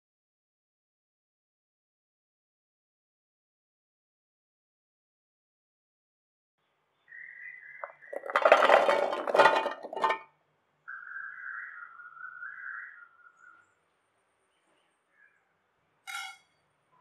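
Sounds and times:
shallots clattering into steel jar: 7.8 - 10.2
steel lid clinking: 8.3 - 10.2.

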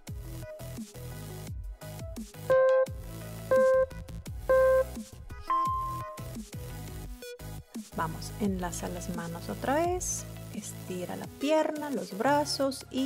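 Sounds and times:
countdown timer beeps: 2.5 - 6.3
electronic music with low beat: 2.5 - 6.5.

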